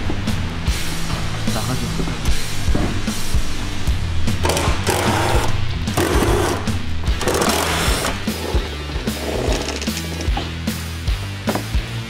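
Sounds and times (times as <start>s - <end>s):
background music with steady beat: 0.0s - 12.0s
impact driver bursts: 4.4s - 8.2s.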